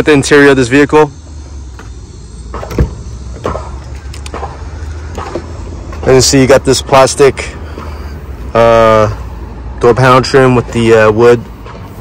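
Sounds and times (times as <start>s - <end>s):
car door handle click: 2.5s - 4.5s.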